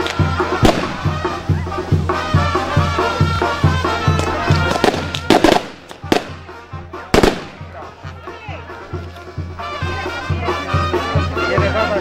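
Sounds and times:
fireworks bangs: 0.0s - 7.9s
faint wind-band music: 0.0s - 12.0s.

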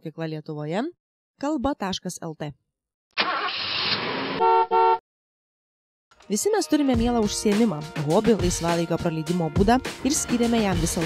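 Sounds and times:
car horn honking: 4.3s - 5.0s.

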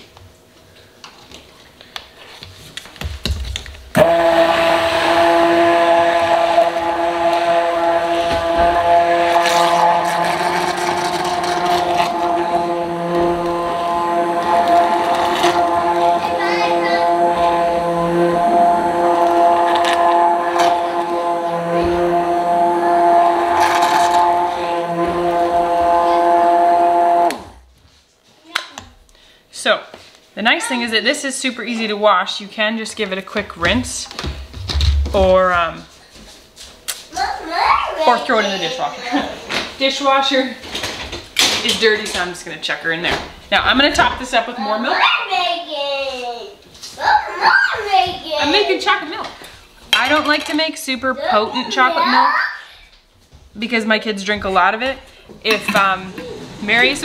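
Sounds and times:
immersion blender motor running: 3.9s - 27.6s.

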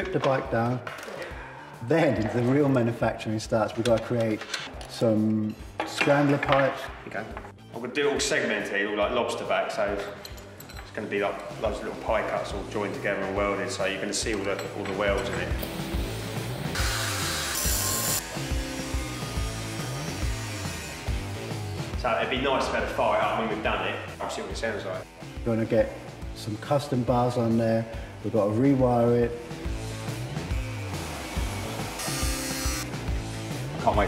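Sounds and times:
background music with steady beat: 0.0s - 34.0s
angle grinder cutting metal: 16.7s - 21.9s, 31.0s - 32.9s.

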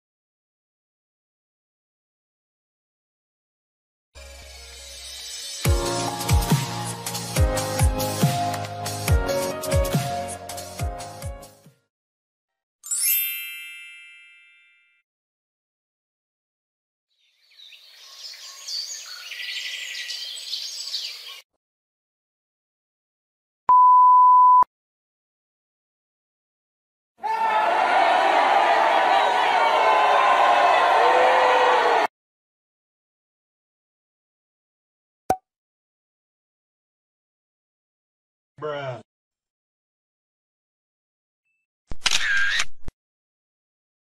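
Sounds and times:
birds chirping and trilling: 17.2s - 21.4s.

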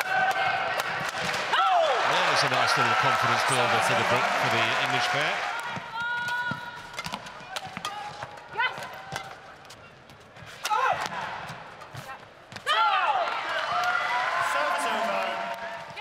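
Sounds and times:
crowd cheering: 0.0s - 8.0s, 12.6s - 16.0s
rackets hitting shuttlecock: 5.5s - 12.7s.

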